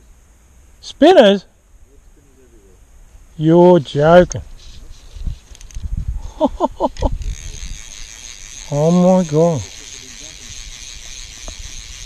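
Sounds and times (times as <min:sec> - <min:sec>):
steady high hiss: 0:00.0 - 0:12.0
wind rumbling on microphone: 0:04.3 - 0:08.6.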